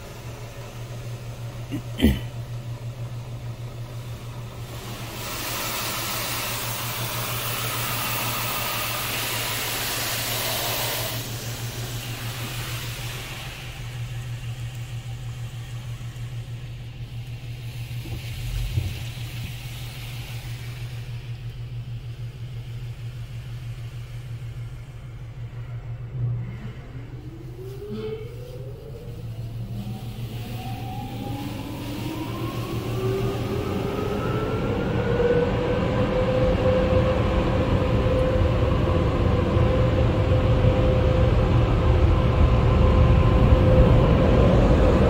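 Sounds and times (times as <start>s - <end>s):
car wash low hum: 0.0s - 45.0s
car wash rushing hiss: 0.0s - 45.0s.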